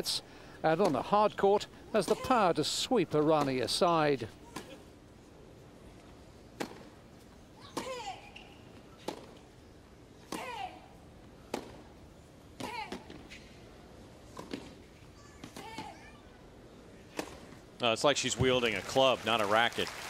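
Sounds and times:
tennis racket hitting ball: 6.6 - 6.9, 10.3 - 10.6.

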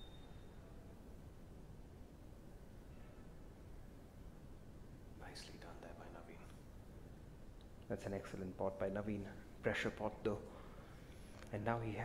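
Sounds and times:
faint low hum: 0.0 - 12.0
person whispering: 5.2 - 6.6.

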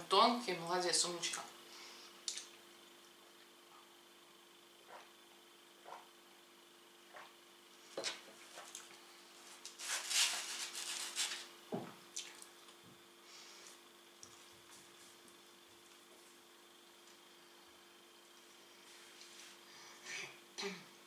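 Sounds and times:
cardboard box rustling and tearing: 9.8 - 11.4.

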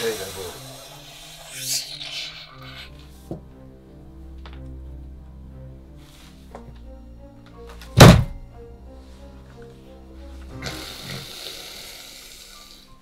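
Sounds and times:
background music sustained tones: 0.0 - 13.0
shotgun thud on carpet: 8.0 - 8.4.

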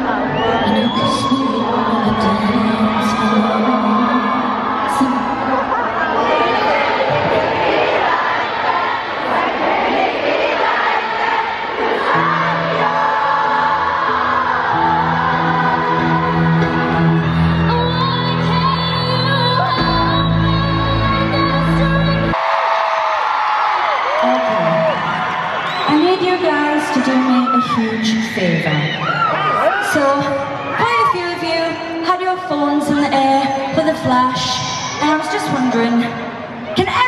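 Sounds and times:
crowd singing: 0.0 - 22.4
crowd cheering and screaming: 0.0 - 37.0.

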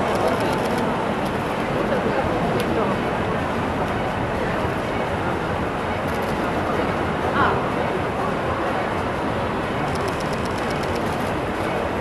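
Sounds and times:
outdoor crowd hubbub: 0.0 - 12.0.

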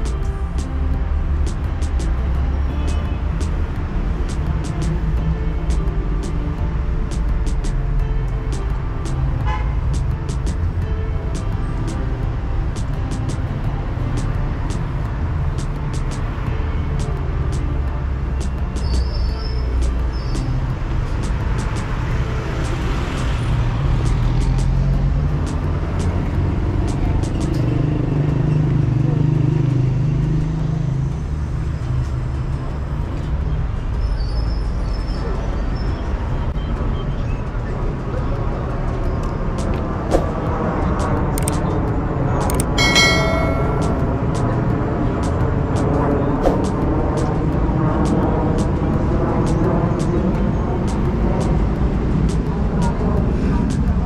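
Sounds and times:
light sharp ticks: 0.0 - 12.1, 12.7 - 23.4, 24.0 - 28.8, 38.9 - 42.8, 45.2 - 54.0
traffic rumble: 0.0 - 54.0.

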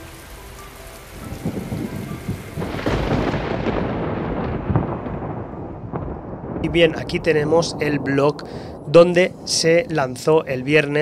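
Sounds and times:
rain: 0.0 - 11.0
rolling thunder: 1.2 - 11.0.

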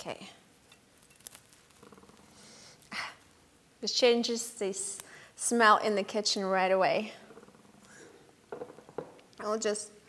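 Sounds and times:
leaves being torn: 0.9 - 2.9.

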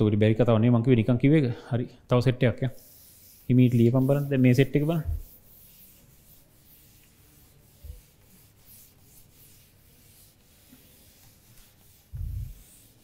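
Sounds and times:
scratching of writing: 2.8 - 13.0.

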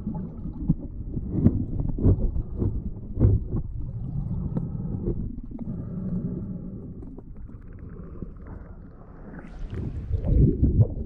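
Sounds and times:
muffled underwater rumble: 0.0 - 11.0.

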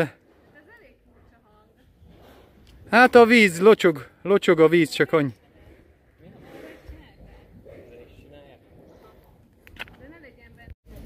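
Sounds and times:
low outdoor background: 0.0 - 11.0.

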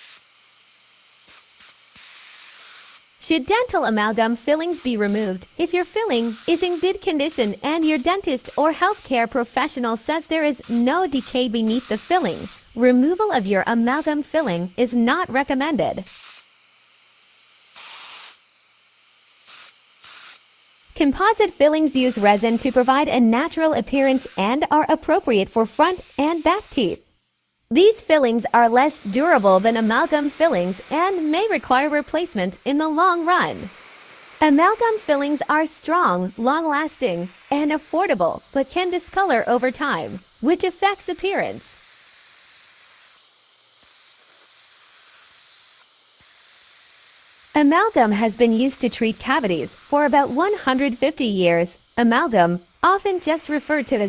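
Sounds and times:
dental drill spray hissing: 0.0 - 54.0.

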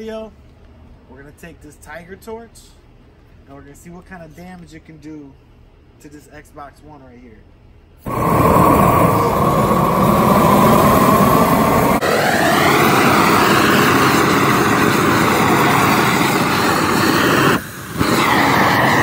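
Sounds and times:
gas torch flame roaring: 8.0 - 19.0.

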